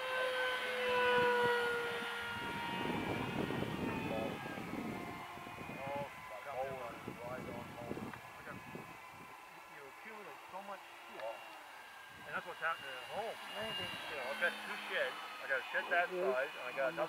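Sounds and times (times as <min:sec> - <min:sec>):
model airplane motor whining: 0:00.0 - 0:17.0
faint voices: 0:02.8 - 0:17.0.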